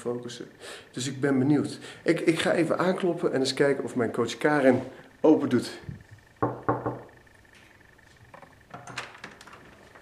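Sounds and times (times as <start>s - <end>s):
knocking on door: 6.4s - 7.1s.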